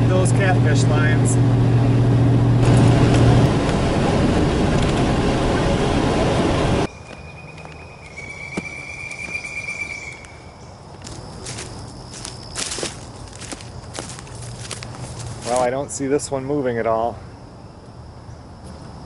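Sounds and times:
tyres on gravel road: 0.0s - 17.2s
footsteps through grass and leaves: 10.9s - 15.9s.

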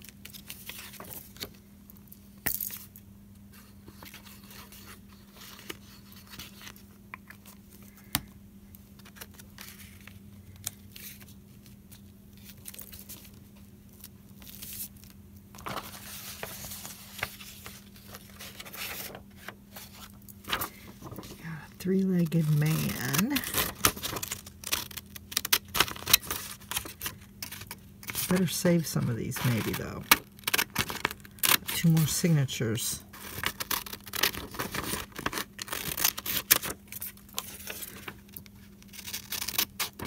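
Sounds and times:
low steady hum: 0.0s - 40.0s
paper rustling and scraping: 3.5s - 7.6s, 9.0s - 32.2s, 33.1s - 40.0s.

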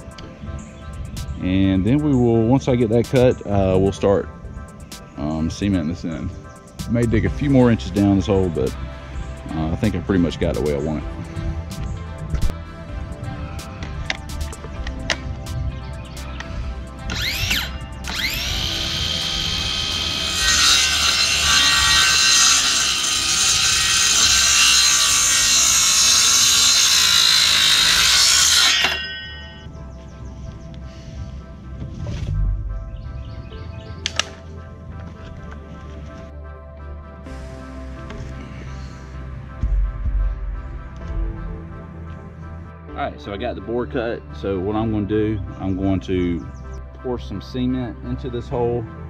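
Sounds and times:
background music: 0.0s - 49.0s
circular saw cutting wood: 16.2s - 29.7s.

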